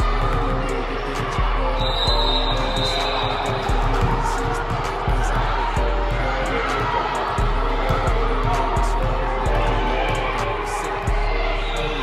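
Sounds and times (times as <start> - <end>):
music with bass line: 0.0 - 12.0
basketballs bouncing on hardwood: 2.8 - 5.6.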